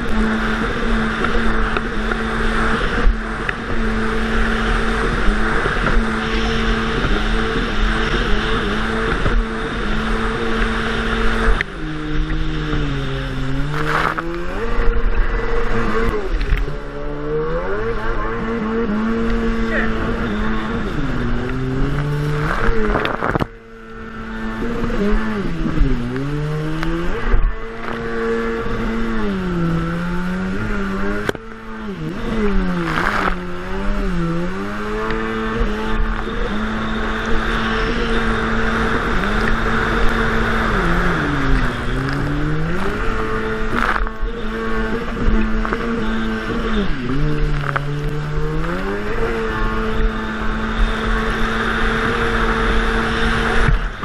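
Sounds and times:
jet ski engine revving: 0:00.0 - 0:54.0
wind: 0:00.0 - 0:54.0.

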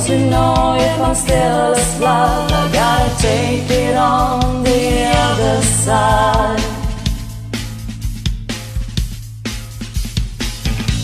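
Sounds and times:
bass line: 0:00.0 - 0:11.0
drum beat: 0:00.0 - 0:11.0.

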